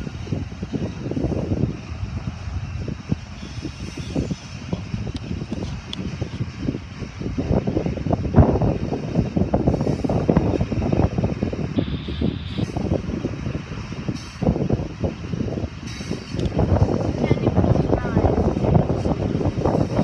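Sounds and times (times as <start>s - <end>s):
freight train wheels rumbling: 0.0s - 20.0s.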